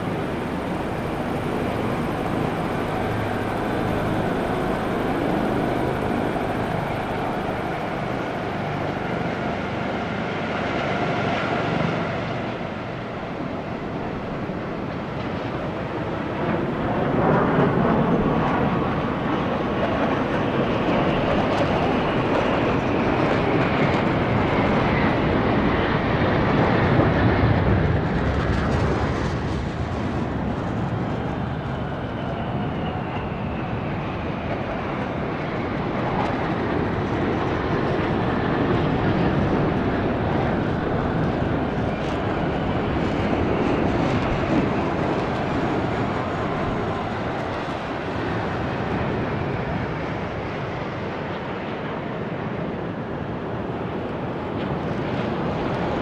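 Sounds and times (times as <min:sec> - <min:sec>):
high jet whines falling in pitch: 0:00.0 - 0:14.3
fighter jets roaring past: 0:00.0 - 0:56.0.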